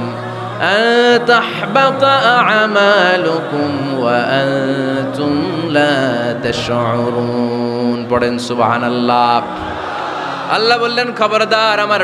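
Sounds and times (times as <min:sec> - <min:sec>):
man reciting in melodic chant: 0:00.0 - 0:12.0.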